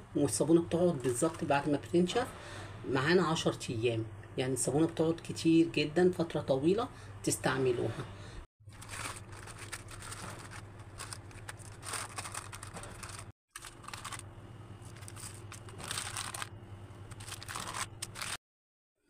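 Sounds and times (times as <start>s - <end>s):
steady low hum: 6.0s - 18.4s
plastic sheet crinkling: 8.7s - 18.4s.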